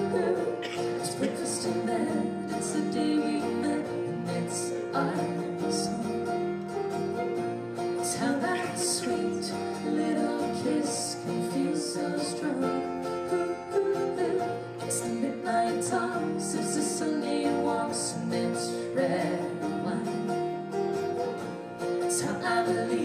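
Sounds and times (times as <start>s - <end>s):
woman singing: 0.0s - 6.3s, 8.0s - 20.5s, 22.0s - 23.0s
acoustic guitar strumming: 0.0s - 23.0s.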